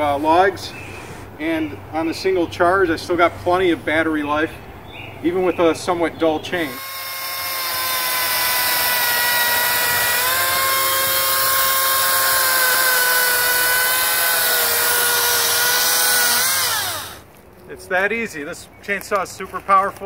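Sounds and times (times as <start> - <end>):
electric chainsaw motor whine: 6.6 - 17.2.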